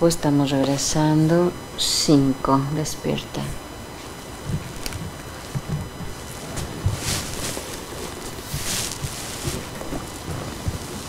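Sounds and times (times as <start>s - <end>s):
hissing rustles: 4.0s - 11.0s
rustling in padded armchair: 4.0s - 11.0s.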